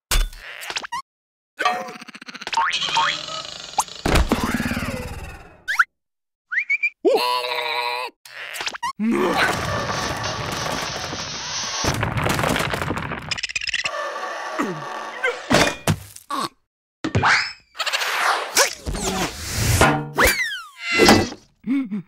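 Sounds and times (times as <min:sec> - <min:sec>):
cartoon scuffle: 0:17.3 - 0:21.4
squealing cartoon voice: 0:20.2 - 0:21.3.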